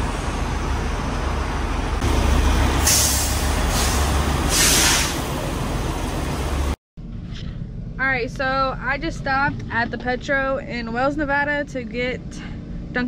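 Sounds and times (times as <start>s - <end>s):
diesel truck engine idling: 0.0s - 6.8s
air brake hiss: 2.8s - 5.3s.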